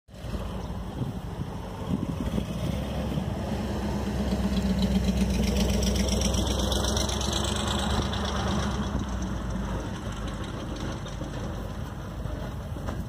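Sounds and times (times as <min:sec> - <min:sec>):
pickup truck engine running: 0:00.1 - 0:13.0.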